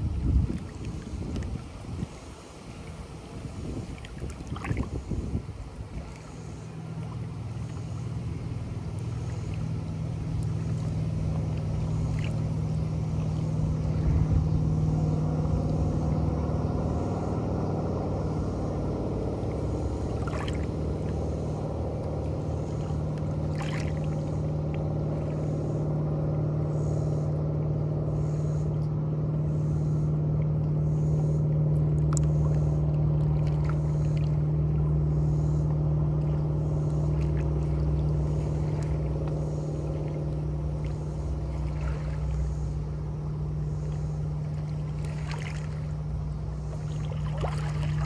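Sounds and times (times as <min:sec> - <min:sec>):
waves lapping against rocks: 0:00.0 - 0:14.1, 0:19.6 - 0:25.7, 0:31.6 - 0:48.0
distant motorboat engine drone: 0:00.0 - 0:48.0.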